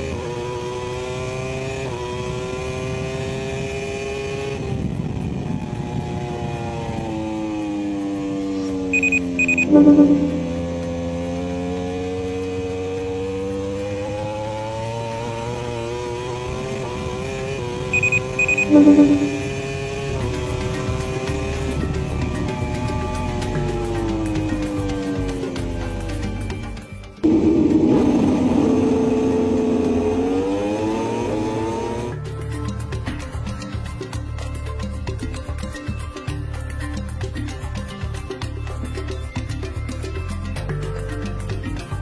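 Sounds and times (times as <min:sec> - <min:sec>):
racing motorcycle engine: 0:00.0 - 0:33.9
high beeps: 0:08.9 - 0:10.7, 0:17.9 - 0:19.8.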